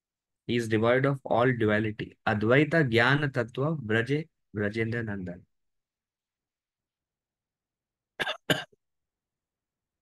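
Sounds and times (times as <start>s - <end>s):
person coughing: 8.2s - 8.8s.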